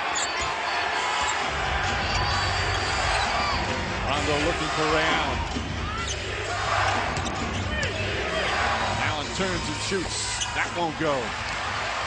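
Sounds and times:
sneaker squeaks: 0:00.0 - 0:01.4, 0:02.0 - 0:03.6, 0:06.0 - 0:06.2
arena crowd noise: 0:00.0 - 0:12.0.

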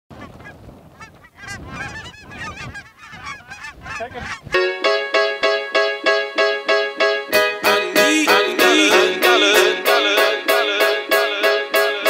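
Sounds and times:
wind rumble on microphone: 0:00.1 - 0:04.6
geese honking in flight: 0:00.2 - 0:04.6.

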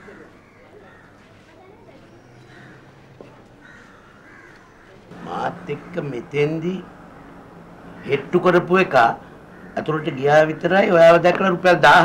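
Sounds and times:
faint crow cawing: 0:00.0 - 0:01.4, 0:02.4 - 0:06.1, 0:06.8 - 0:11.0.

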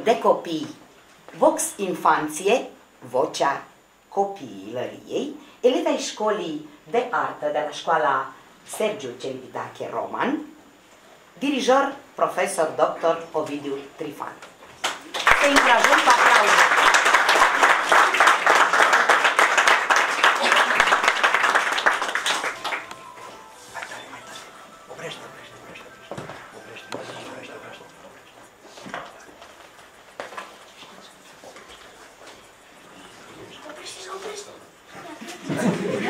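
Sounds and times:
audience applauding: 0:14.8 - 0:24.3.

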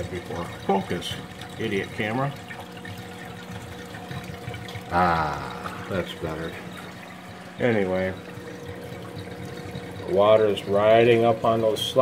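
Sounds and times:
low steady hum: 0:00.0 - 0:12.0
water running down a pipe: 0:00.0 - 0:12.0.

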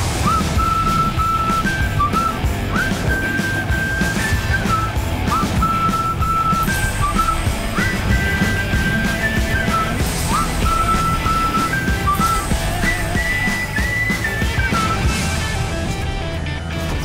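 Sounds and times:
high whistled tune: 0:00.0 - 0:15.8
steady beat: 0:00.0 - 0:16.4.

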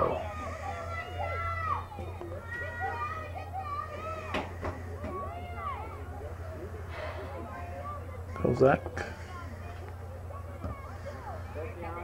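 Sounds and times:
girls shouting: 0:00.0 - 0:06.5
steady low hum: 0:00.0 - 0:12.0.

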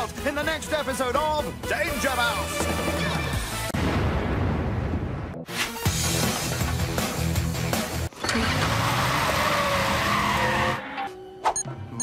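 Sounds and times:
background music: 0:00.0 - 0:04.1, 0:05.0 - 0:12.0
tyres skidding screech: 0:08.2 - 0:11.2.

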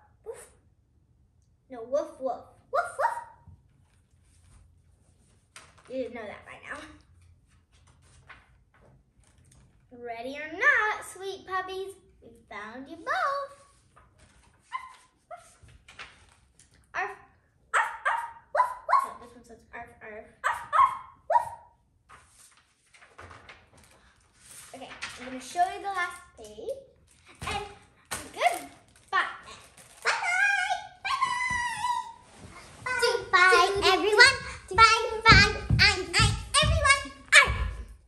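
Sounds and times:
child imitating puppy yips: 0:00.2 - 0:00.6, 0:02.7 - 0:03.4, 0:14.7 - 0:15.6, 0:17.8 - 0:19.2, 0:20.4 - 0:21.8, 0:30.1 - 0:32.3.

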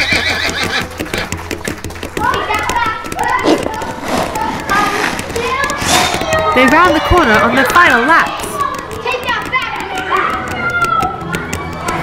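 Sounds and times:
horse whinnying: 0:00.0 - 0:01.2
hooves galloping: 0:00.0 - 0:12.0.

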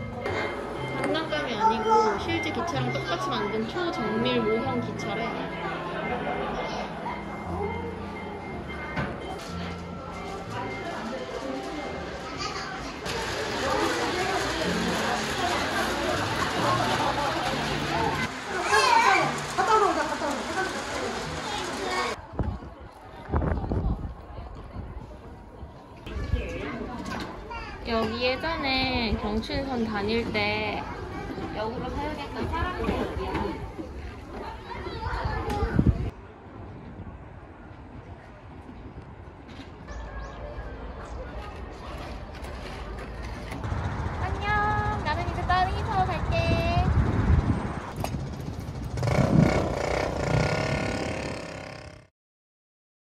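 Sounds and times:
indistinct voices talking: 0:00.0 - 0:36.1
low outdoor rumble: 0:42.2 - 0:52.0.

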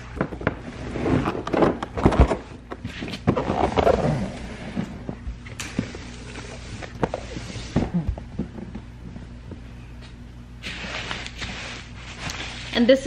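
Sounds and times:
bubble wrap crinkling: 0:10.6 - 0:12.8.

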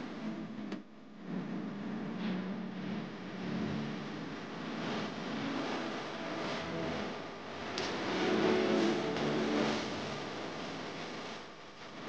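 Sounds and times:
hissy backing music: 0:01.8 - 0:11.2.

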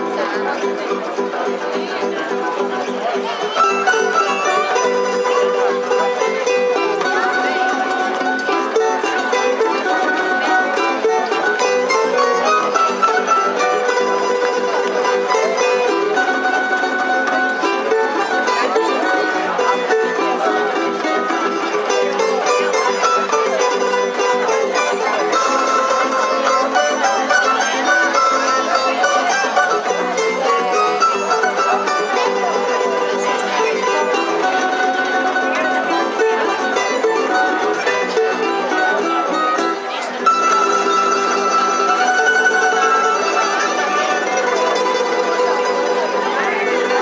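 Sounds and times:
plucked double bass: 0:00.0 - 0:47.0
plucked string ensemble: 0:00.0 - 0:47.0.

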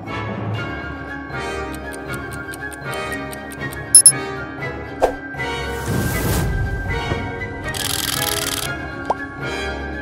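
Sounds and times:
background music: 0:00.0 - 0:10.0
timer ticking: 0:01.7 - 0:04.2.

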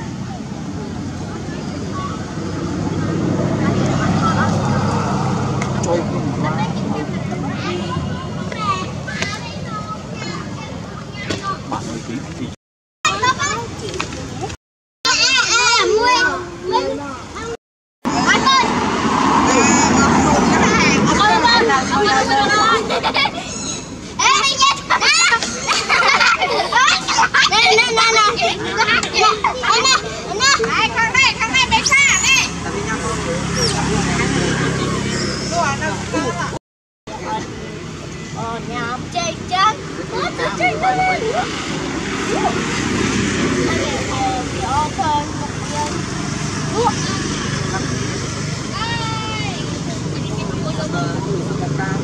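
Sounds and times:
infant monkey screeching: 0:23.4 - 0:24.0, 0:35.1 - 0:35.8.

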